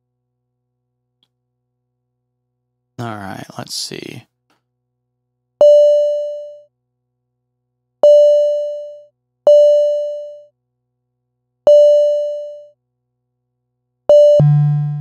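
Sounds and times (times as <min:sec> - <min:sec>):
synth notes with click: 0:14.1 - 0:15.0.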